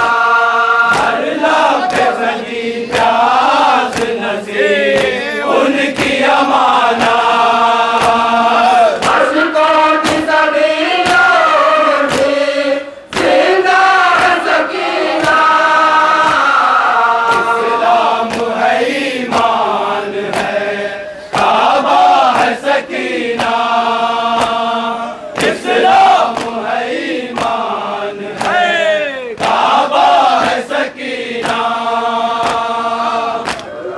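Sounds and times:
men chanting in unison: 0:00.0 - 0:33.9
chest slaps: 0:04.9 - 0:05.2, 0:25.3 - 0:26.6, 0:28.4 - 0:29.7, 0:33.4 - 0:33.7.

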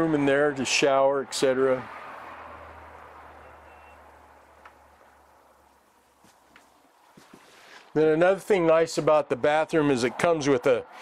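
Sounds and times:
faint short beep: 0:03.4 - 0:04.0.

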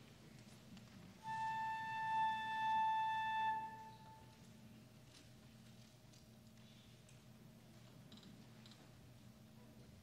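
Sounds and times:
flute long held note: 0:01.2 - 0:04.3.

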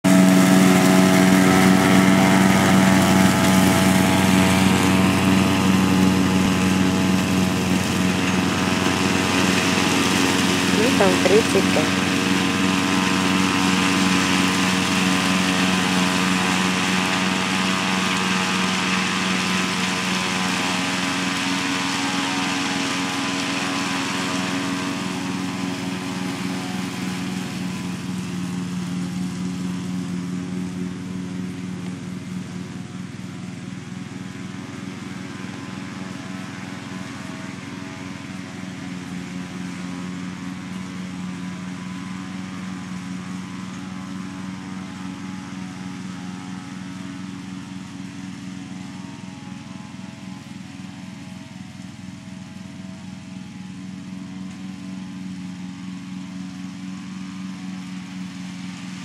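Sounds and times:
ride-on lawn mower engine: 0:00.0 - 0:59.0.

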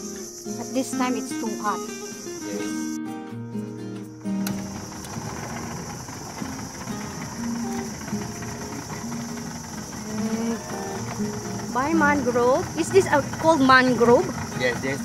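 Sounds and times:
small boat motor hum: 0:00.0 - 0:03.0, 0:03.6 - 0:15.0
background music with held notes: 0:00.0 - 0:15.0
high insect drone: 0:00.0 - 0:15.0.

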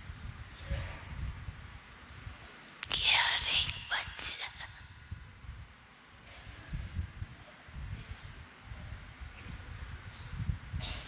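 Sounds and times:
woman speaking breathily: 0:02.8 - 0:04.9.

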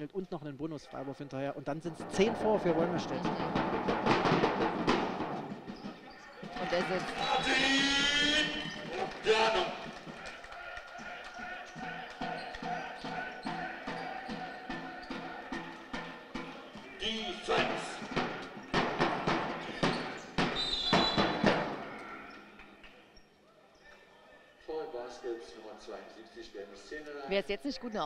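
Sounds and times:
crowd voices in hall: 0:00.8 - 0:28.0
knocks of play on court: 0:02.2 - 0:23.0
basketball bouncing on hardwood: 0:02.5 - 0:07.1, 0:11.8 - 0:21.8.

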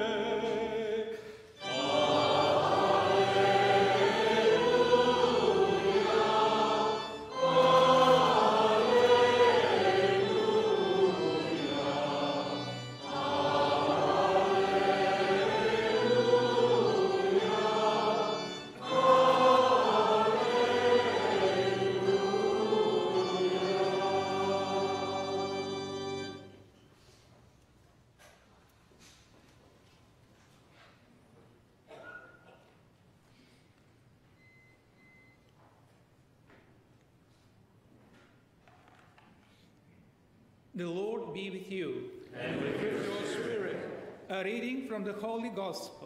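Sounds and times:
choir and congregation singing: 0:00.0 - 0:26.6, 0:42.3 - 0:44.5.

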